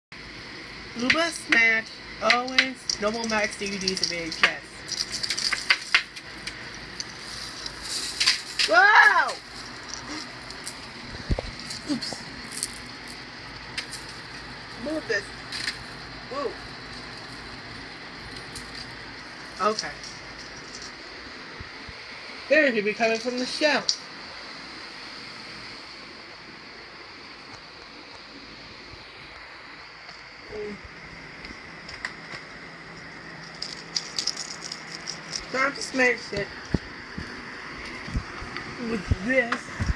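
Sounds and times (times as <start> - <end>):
steady background hum: 0.1 - 39.9
background hiss: 0.2 - 39.9
handling clicks and knocks: 2.3 - 8.7.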